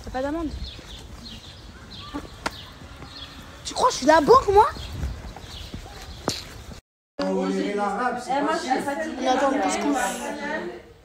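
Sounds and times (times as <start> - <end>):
street background noise: 0.0 - 11.0.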